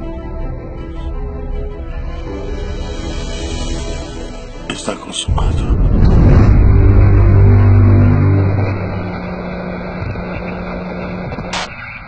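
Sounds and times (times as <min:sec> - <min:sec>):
low rumbling drone: 0:05.3 - 0:11.6.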